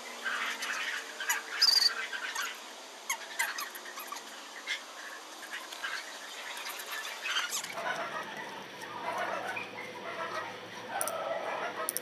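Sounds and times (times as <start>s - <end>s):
high chirps and squeaks: 0.2s - 7.8s.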